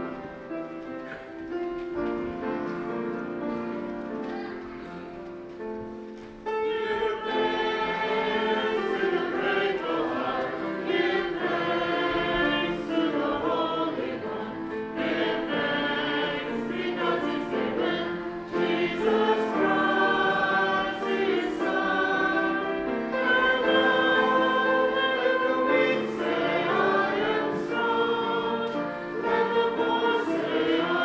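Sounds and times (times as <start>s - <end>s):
choir singing a hymn: 6.4s - 31.0s.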